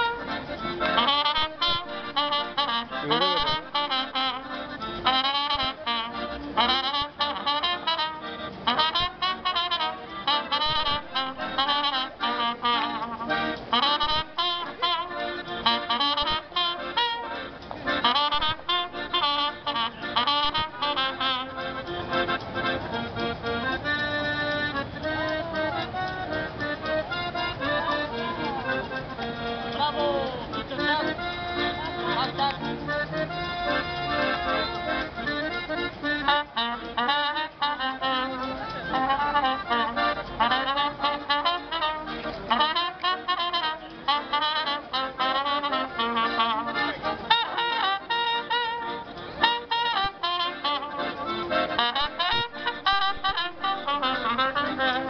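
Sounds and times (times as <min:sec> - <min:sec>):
accordion chords: 0:00.0 - 0:55.0
trumpet melody: 0:00.0 - 0:55.0.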